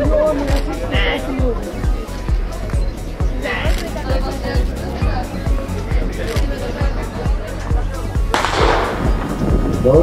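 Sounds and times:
music with low beat: 0.0 - 10.0
starting pistol shot with echo: 8.3 - 9.8.

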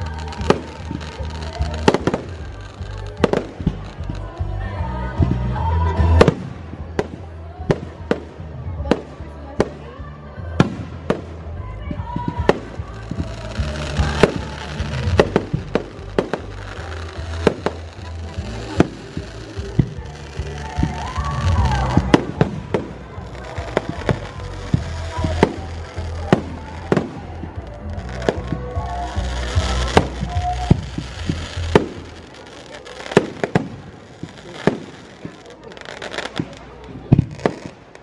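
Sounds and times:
fireworks bursting with bangs: 0.0 - 9.9, 10.6 - 38.0
background music: 0.0 - 35.1.

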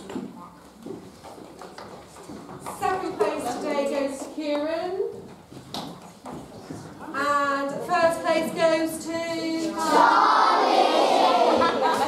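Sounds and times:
footsteps on hard floor: 0.1 - 7.0.

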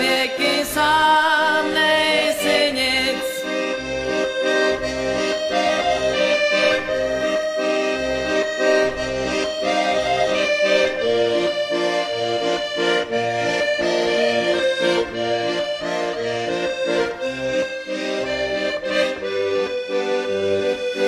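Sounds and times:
instrumental background music: 0.0 - 21.0.

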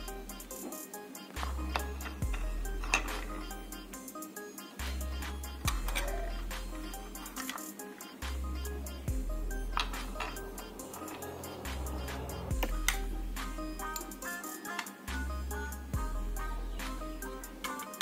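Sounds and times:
deep held bass notes: 8.3 - 13.8.

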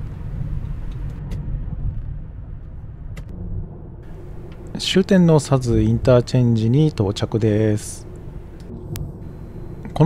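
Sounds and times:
car tyre road rumble: 0.0 - 3.4.

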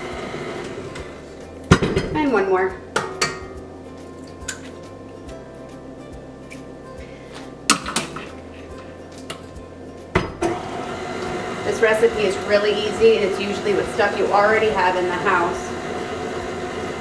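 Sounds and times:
soft background music: 0.0 - 17.0.

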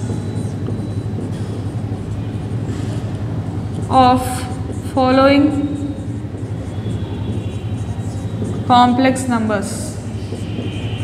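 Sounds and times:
marker writing on whiteboard: 0.0 - 11.0.

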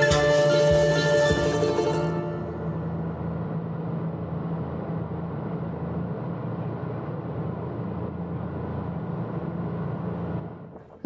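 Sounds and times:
motorboat engine droning: 0.0 - 11.0.

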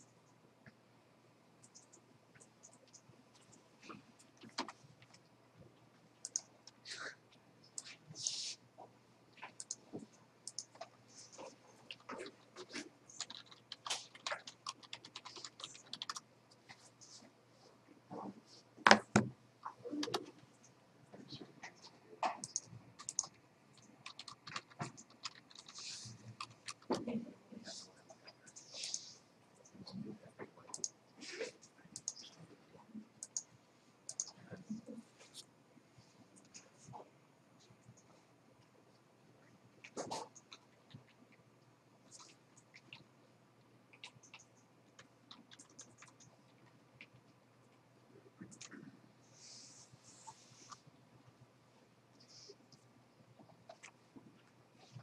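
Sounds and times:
faint steady hum: 0.0 - 55.0
computer keyboard typing: 1.6 - 3.5, 6.2 - 6.8, 9.5 - 10.9, 11.9 - 16.3, 19.9 - 20.4, 22.4 - 27.2, 30.6 - 31.0, 32.0 - 32.3, 33.2 - 33.5, 34.1 - 34.4, 43.9 - 47.2, 48.4 - 48.8.

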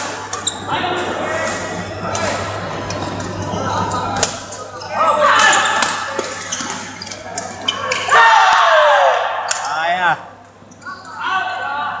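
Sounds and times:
voices calling out in hall: 0.0 - 12.0.

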